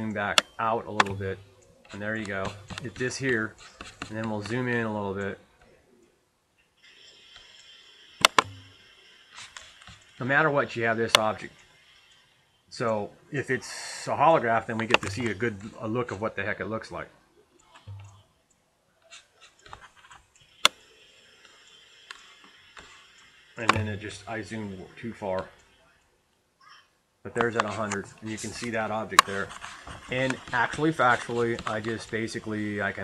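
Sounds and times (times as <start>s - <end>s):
high-pitched whine and hiss: 6.8s - 17.0s, 19.4s - 26.0s, 27.3s - 33.0s
computer mouse clicks: 7.3s - 10.2s, 17.6s - 23.9s.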